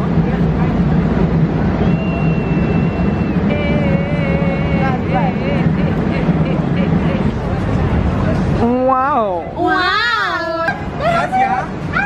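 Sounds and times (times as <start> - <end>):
crowd voices: 0.0 - 12.0
traffic rumble: 0.0 - 12.0
high steady tone: 1.7 - 8.0
wavering shouted voices: 9.6 - 12.0.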